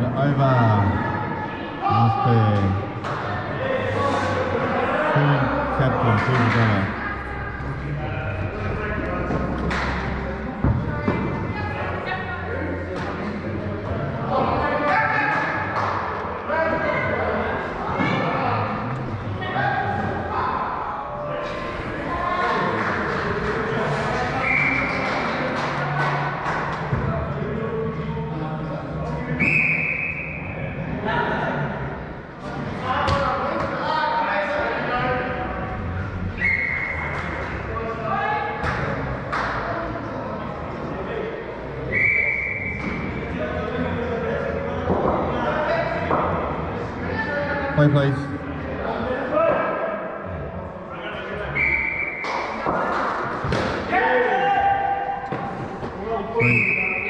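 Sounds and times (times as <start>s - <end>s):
players calling and chatting: 0.0s - 57.0s.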